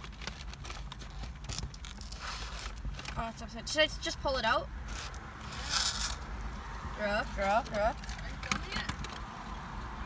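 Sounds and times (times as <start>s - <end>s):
cardboard sleeve scraping rustle: 0.0s - 3.2s, 4.9s - 6.2s
car engine rumble: 0.0s - 10.0s.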